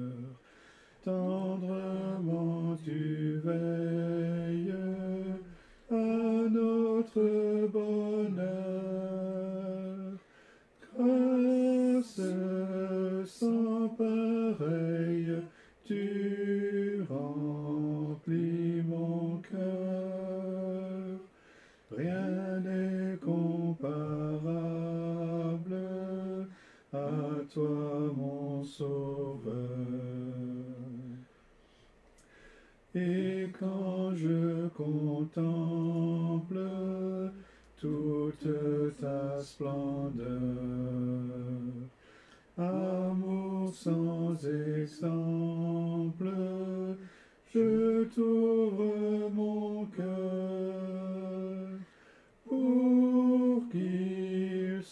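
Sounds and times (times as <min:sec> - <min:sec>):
slow hymn being sung: 0:00.0 - 0:54.9
short breath: 0:00.4 - 0:01.0, 0:05.5 - 0:05.9, 0:10.2 - 0:10.8, 0:15.5 - 0:15.8, 0:21.3 - 0:21.9, 0:26.5 - 0:26.9, 0:31.3 - 0:32.9, 0:37.4 - 0:37.8, 0:42.0 - 0:42.6, 0:47.0 - 0:47.4, 0:51.8 - 0:52.4.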